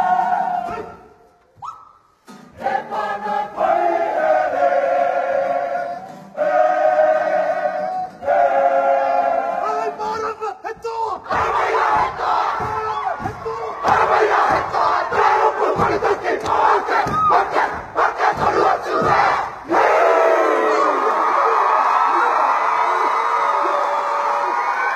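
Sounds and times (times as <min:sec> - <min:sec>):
group shouting a chant: 0:00.0 - 0:01.2, 0:02.6 - 0:10.1, 0:11.0 - 0:24.9
long held group cry: 0:02.6 - 0:09.7, 0:11.3 - 0:24.9
stamping and body slaps: 0:11.3 - 0:19.4.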